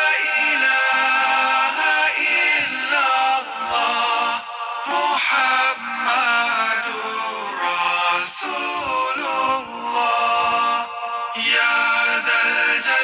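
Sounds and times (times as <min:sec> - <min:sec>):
person singing melodic chant: 0:00.0 - 0:13.0.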